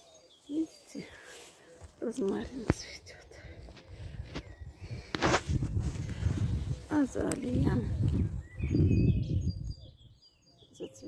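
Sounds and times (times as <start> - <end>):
footsteps on dry needle litter: 0.4 - 8.3
woman speaking: 0.5 - 1.3, 2.0 - 3.4, 6.8 - 8.0, 10.8 - 11.0.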